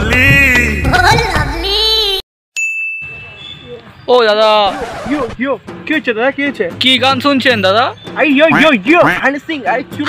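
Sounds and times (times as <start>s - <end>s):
man singing loudly: 0.0s - 1.0s
bright ding chime: 2.6s - 3.6s.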